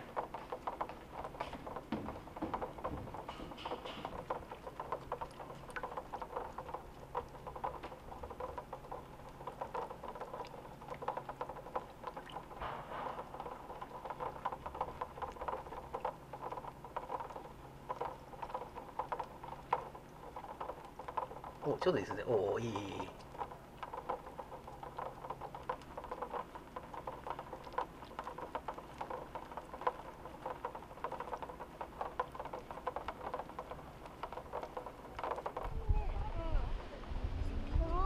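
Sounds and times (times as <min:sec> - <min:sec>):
flippers tapping on plastic: 0:00.0 - 0:35.8.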